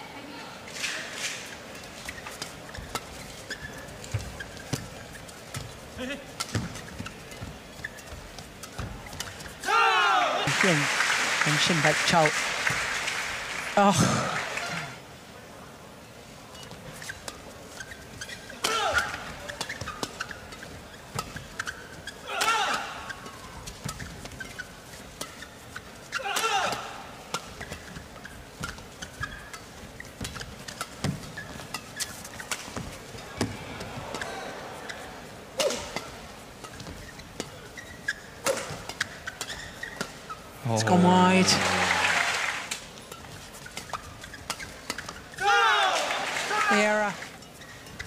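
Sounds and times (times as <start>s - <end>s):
shoes squeaking on floor: 1.3s - 9.7s, 16.5s - 41.8s, 42.7s - 45.5s, 46.6s - 48.0s.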